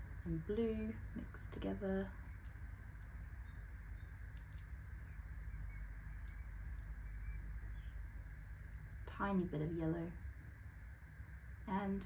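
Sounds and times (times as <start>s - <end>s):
low hum: 0.0s - 12.0s
faint high chirps: 2.1s - 8.9s
light clicks: 2.2s - 4.8s.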